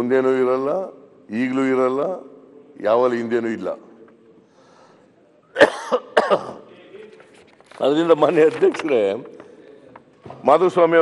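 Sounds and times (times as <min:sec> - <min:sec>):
person coughing: 0:05.6 - 0:06.7.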